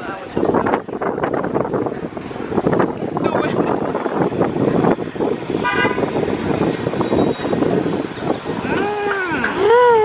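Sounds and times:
street traffic: 0:00.0 - 0:10.0
vehicle horn toot: 0:05.6 - 0:06.1.

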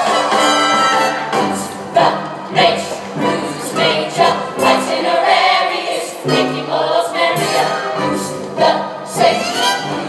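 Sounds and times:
ensemble singing in chorus: 0:00.0 - 0:10.0
pit orchestra accompaniment: 0:00.0 - 0:10.0.

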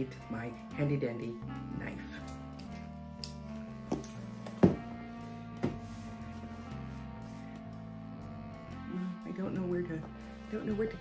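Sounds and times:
background music with held notes: 0:00.0 - 0:11.0
cardboard box knocking on table: 0:03.9 - 0:04.9, 0:05.6 - 0:05.8.

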